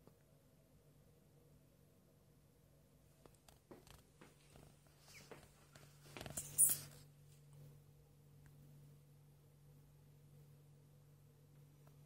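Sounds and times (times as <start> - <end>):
faint low hum: 0.0 - 12.0
faint clicks and rustles: 3.1 - 7.6.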